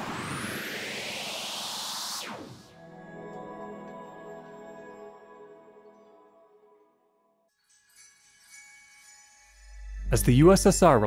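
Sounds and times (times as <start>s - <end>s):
synthetic whoosh rising in pitch: 0.0s - 2.8s.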